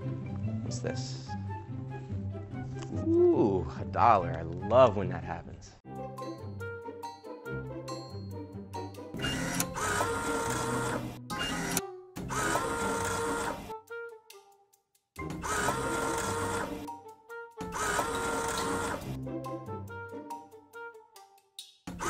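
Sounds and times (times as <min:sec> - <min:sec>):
background music: 0:00.0 - 0:22.0
bill acceptor motor whirring: 0:09.2 - 0:13.7, 0:15.3 - 0:16.9, 0:17.7 - 0:19.2.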